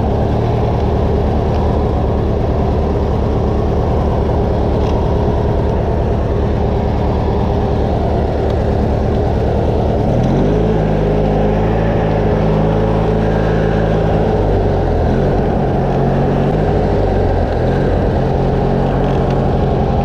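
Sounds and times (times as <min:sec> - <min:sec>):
lawn tractor engine running: 0:00.0 - 0:20.0.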